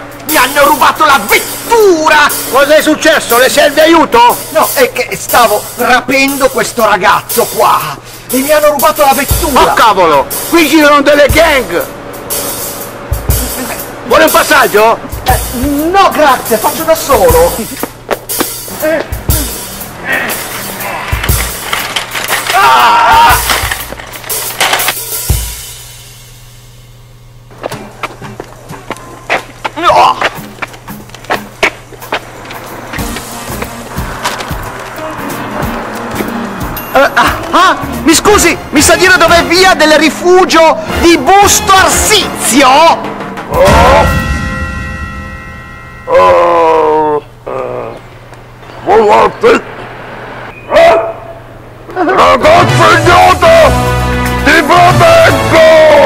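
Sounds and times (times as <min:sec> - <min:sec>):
man shouting: 0:13.3 - 0:17.8, 0:18.7 - 0:21.2, 0:22.4 - 0:23.6, 0:29.8 - 0:30.4, 0:36.9 - 0:44.2, 0:50.7 - 0:51.4, 0:52.0 - 0:56.0
shopping cart rattling on pavement: 0:20.8 - 0:25.0.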